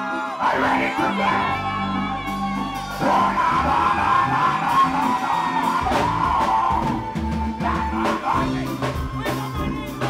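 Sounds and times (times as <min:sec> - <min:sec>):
bass: 0:00.0 - 0:10.0
drums: 0:00.0 - 0:10.0
electric and acoustic guitars: 0:00.0 - 0:10.0
keyboard: 0:00.0 - 0:10.0.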